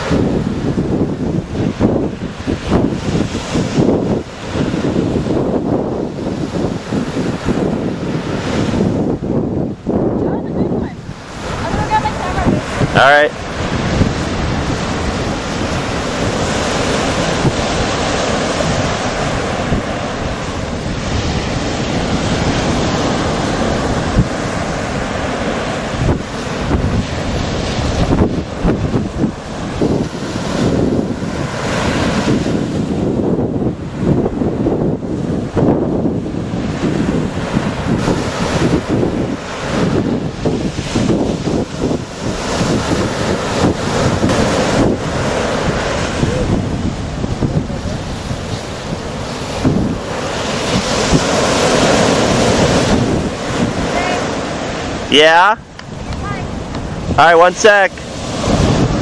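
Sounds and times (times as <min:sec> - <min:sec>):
surf breaking on beach: 0:00.0 - 0:59.0
wind buffeting microphone: 0:00.0 - 0:59.0.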